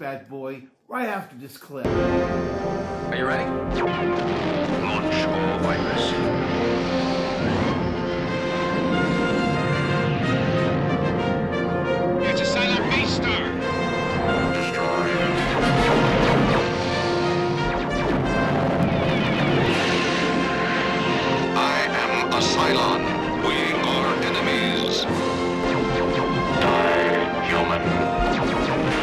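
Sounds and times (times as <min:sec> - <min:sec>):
orchestral brass and string chords: 0:01.9 - 0:29.0
space battle explosions booming: 0:01.9 - 0:29.0.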